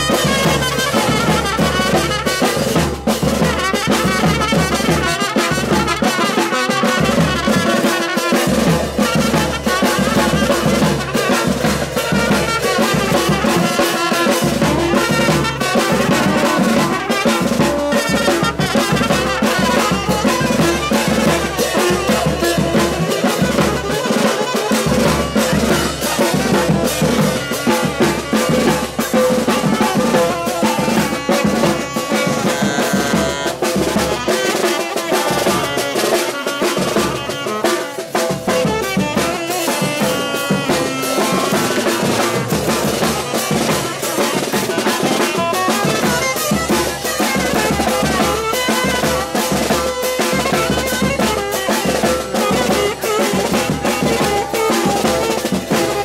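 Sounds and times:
drums and cymbals: 0.0s - 56.0s
horns playing melody: 0.0s - 56.0s.

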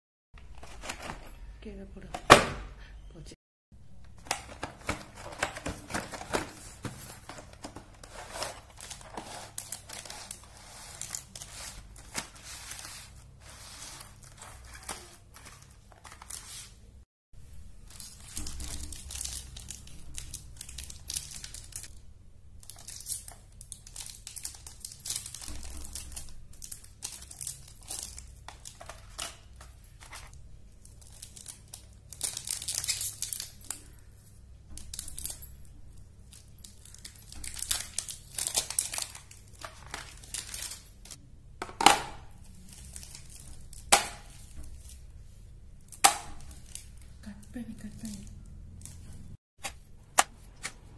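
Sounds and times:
plastic wrappers crinkling: 4.2s - 16.9s, 17.8s - 21.9s, 22.6s - 34.1s, 34.8s - 41.2s, 42.4s - 49.4s.

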